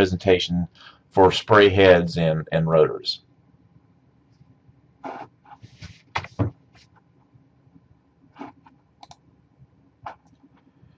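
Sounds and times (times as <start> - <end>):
computer mouse clicks: 8.4 - 9.2.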